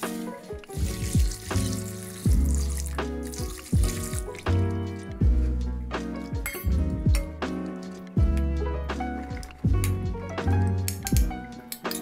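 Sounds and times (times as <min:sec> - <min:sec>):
background music: 0:00.0 - 0:12.0
metal spoon clinking bowl: 0:06.4 - 0:07.3.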